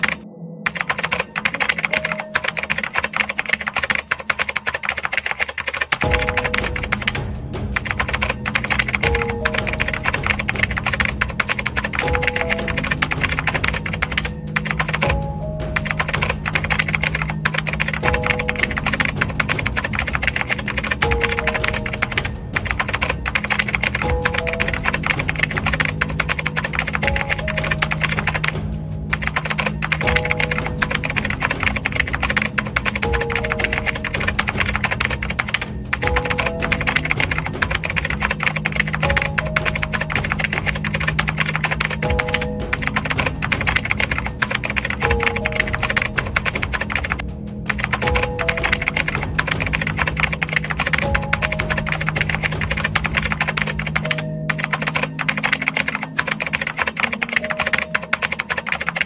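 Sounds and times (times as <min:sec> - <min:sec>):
rapid keyboard typing: 0:00.0 - 0:59.0
low steady drone: 0:06.0 - 0:55.3.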